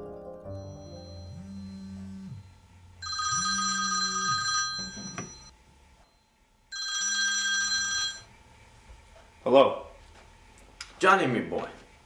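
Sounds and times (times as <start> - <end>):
smartphone ringing: 0.5 - 2.4, 3.0 - 5.5, 6.7 - 8.3.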